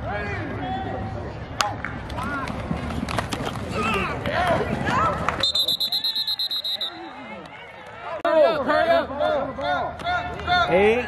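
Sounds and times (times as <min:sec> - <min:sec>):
referee whistle trilling: 0:05.4 - 0:07.2.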